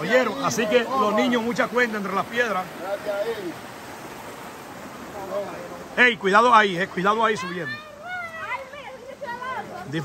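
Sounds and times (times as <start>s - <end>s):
river water rushing: 0.0s - 10.0s.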